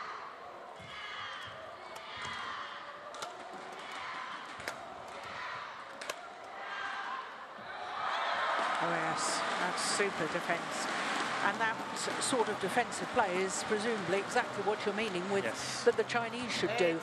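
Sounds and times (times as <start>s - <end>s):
large crowd noise: 0.0s - 17.0s.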